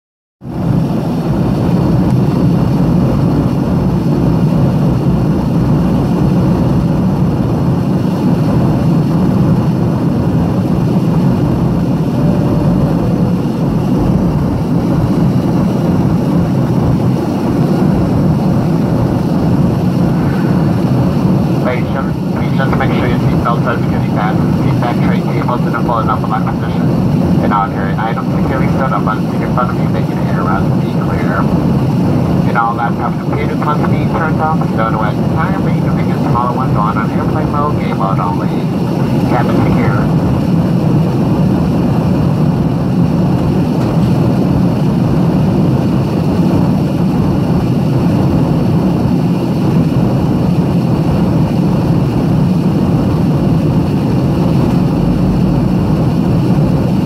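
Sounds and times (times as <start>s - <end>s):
airliner engines in flight: 0.4s - 57.0s
person speaking over cabin noise: 20.2s - 31.6s, 32.4s - 40.2s.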